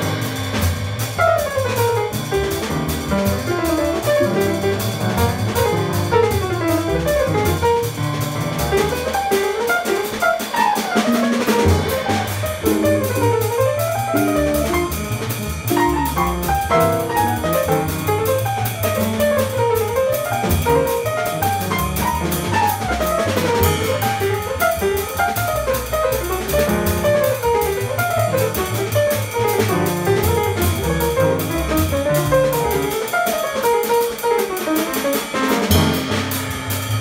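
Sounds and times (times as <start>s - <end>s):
upright bass: 0.0s - 9.1s, 11.4s - 33.0s
drum kit: 0.0s - 37.0s.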